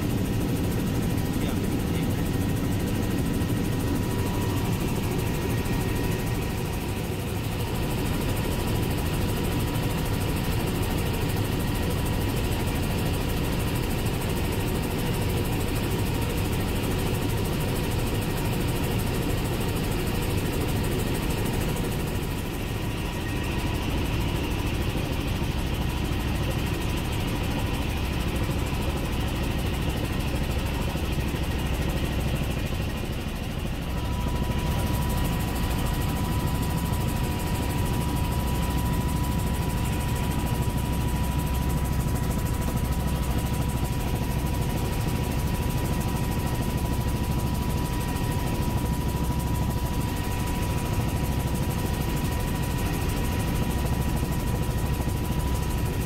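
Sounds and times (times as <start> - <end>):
helicopter rotor and turbine drone: 0.0 - 56.0
thin steady whine: 0.0 - 56.0.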